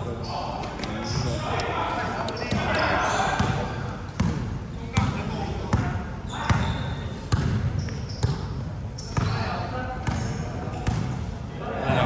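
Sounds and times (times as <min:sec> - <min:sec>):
players' voices in hall: 0:00.0 - 0:12.0
basketball bouncing on court: 0:03.4 - 0:11.2.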